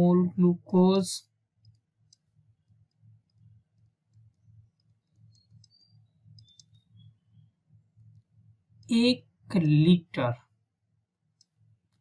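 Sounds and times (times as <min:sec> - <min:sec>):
clicks and taps on a screen: 0:01.2 - 0:09.0, 0:11.2 - 0:12.0.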